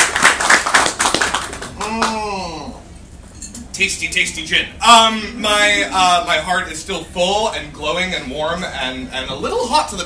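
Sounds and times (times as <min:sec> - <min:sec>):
audience clapping: 0:00.0 - 0:02.2
man humming mmm: 0:01.8 - 0:02.8.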